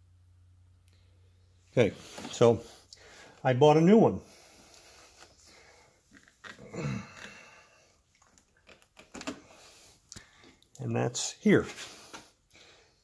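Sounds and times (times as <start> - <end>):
man grunting uhh: 6.6 - 7.5.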